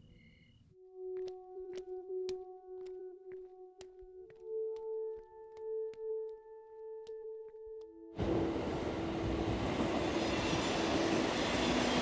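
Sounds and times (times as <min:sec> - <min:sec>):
train wheel and running noise: 0:08.2 - 0:12.0.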